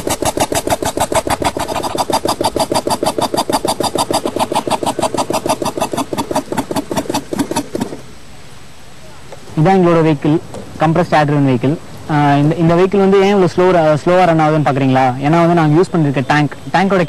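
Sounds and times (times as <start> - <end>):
piston engine exhaust puffing: 0.0 - 8.1.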